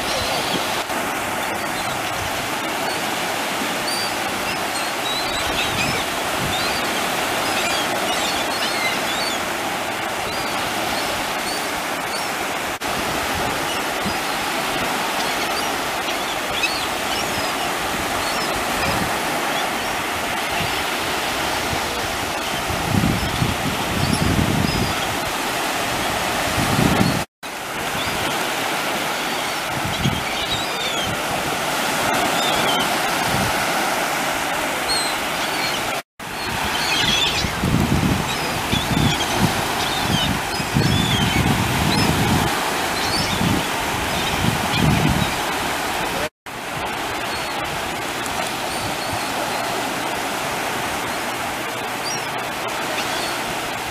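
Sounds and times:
gulls calling: 0:00.0 - 0:53.9
ocean surf breaking: 0:00.0 - 0:53.9.

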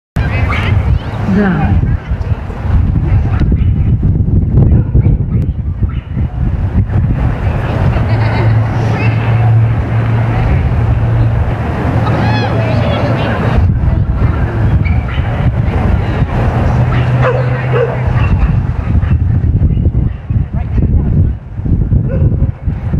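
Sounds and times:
indistinct distant voices: 0:00.2 - 0:21.6
wind rumbling on microphone: 0:00.2 - 0:22.9.

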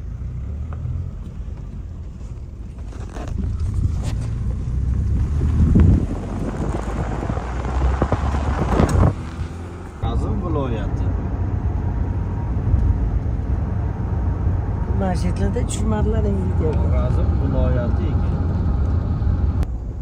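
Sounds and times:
car road and wind noise: 0:00.0 - 0:20.0.

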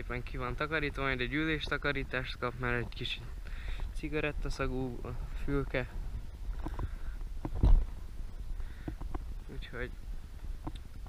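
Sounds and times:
wind rumble on microphone: 0:00.0 - 0:11.0
camera handling knocks and thump: 0:06.6 - 0:07.9, 0:08.8 - 0:09.2.

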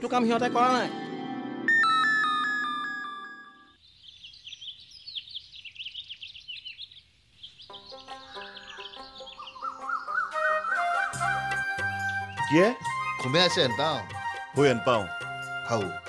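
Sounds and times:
musical chime sting: 0:00.8 - 0:03.8
birds chirping: 0:01.7 - 0:16.0
soft background music: 0:07.7 - 0:16.0.

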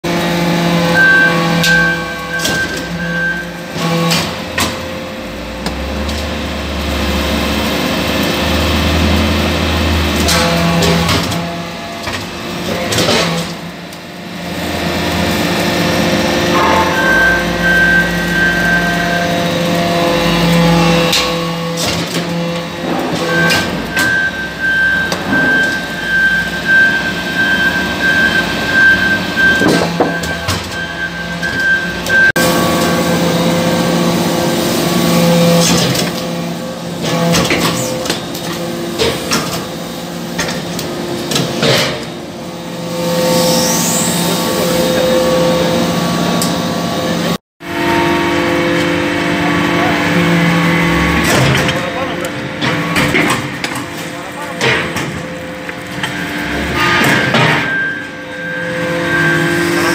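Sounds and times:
steady machine hum: 0:13.7 - 0:21.6
background music long tones: 0:16.3 - 0:19.5.

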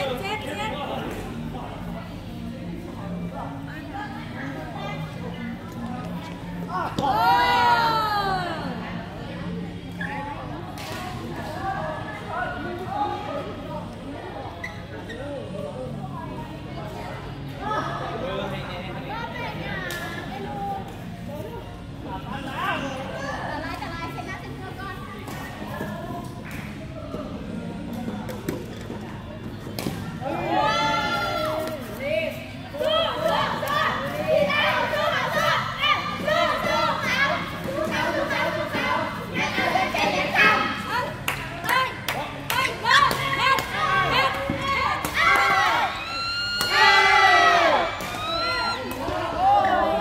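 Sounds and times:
players shouting and chattering: 0:00.0 - 0:50.0.

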